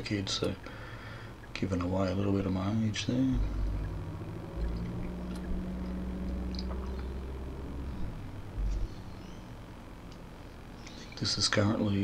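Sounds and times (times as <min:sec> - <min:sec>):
car engine and road hum: 0:01.4 - 0:11.2.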